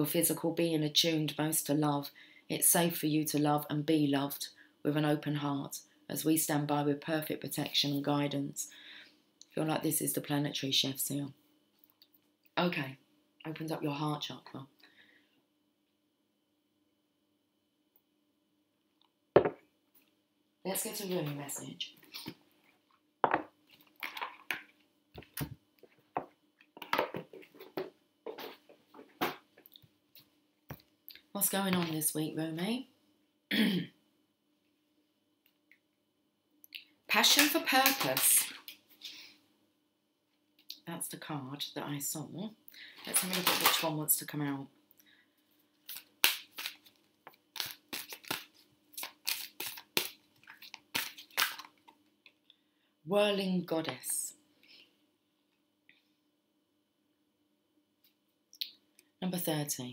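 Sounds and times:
faint steady hum: 0:00.0 - 0:59.9
cards being shuffled: 0:45.9 - 0:52.0.

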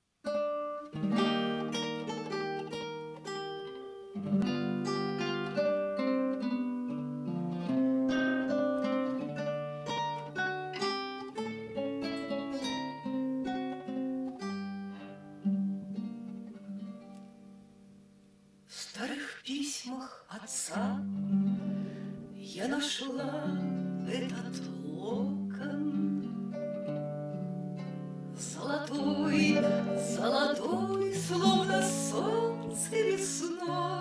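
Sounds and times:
classical guitar fingerpicking: 0:00.2 - 0:18.7, 0:20.3 - 0:34.0.

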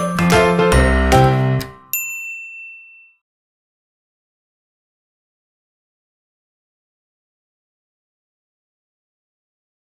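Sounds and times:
bright bell-like ding: 0:01.9 - 0:03.2.

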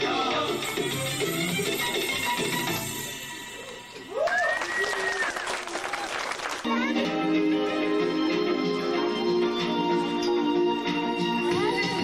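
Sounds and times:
audience clapping and cheering: 0:03.6 - 0:07.2.

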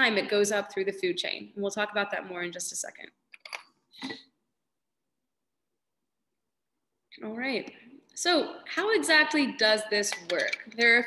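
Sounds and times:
bottle clicks: 0:10.0 - 0:10.9.

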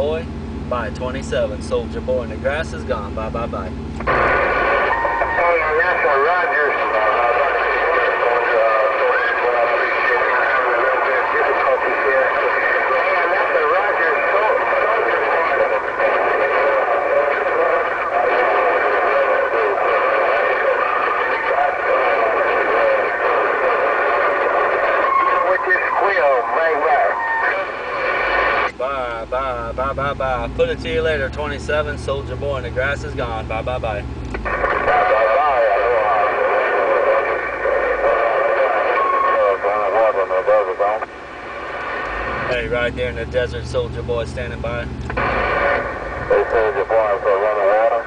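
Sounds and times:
overlapping voices over radio speaker: 0:00.0 - 0:48.0
clear voice over radio: 0:04.9 - 0:27.7, 0:34.5 - 0:41.1, 0:45.5 - 0:48.0.

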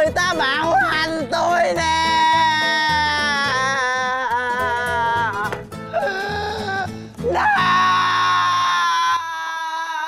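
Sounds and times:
man wailing cry: 0:00.0 - 0:10.0.

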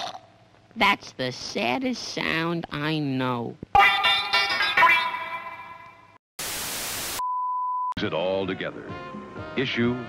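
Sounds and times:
television static hiss: 0:06.4 - 0:07.2.

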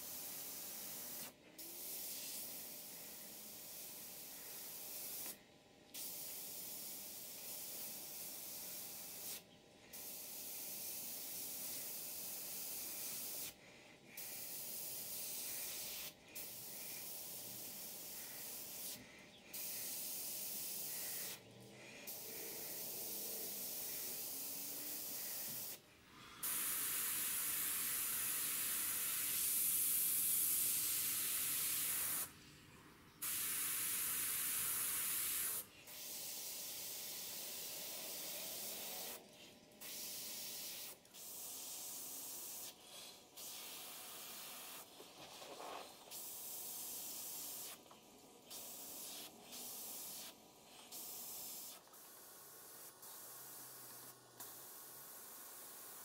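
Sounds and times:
airbrush spraying air hiss: 0:00.0 - 0:32.4, 0:33.0 - 0:56.0.

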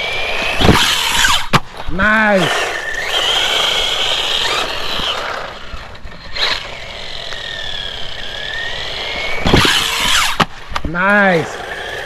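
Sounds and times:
electric motor whining: 0:00.0 - 0:12.0.

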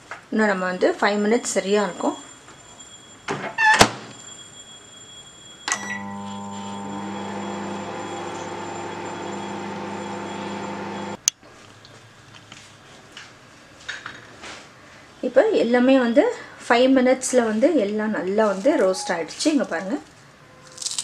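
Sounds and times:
microwave oven humming: 0:05.7 - 0:11.2.

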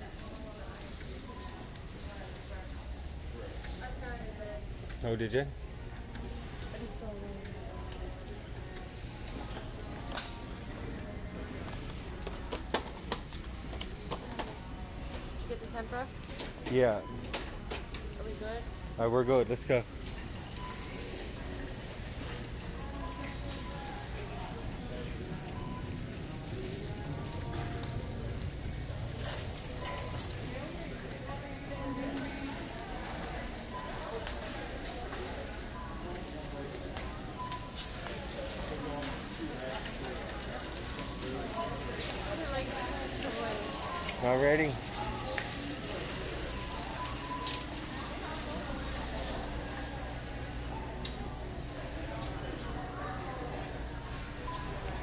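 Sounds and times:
indistinct voices: 0:00.0 - 0:55.0.

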